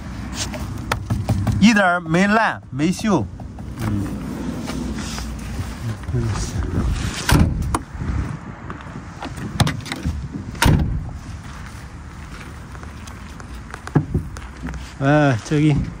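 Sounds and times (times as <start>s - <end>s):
van doors clunking shut: 7.2s - 7.9s, 8.9s - 11.2s.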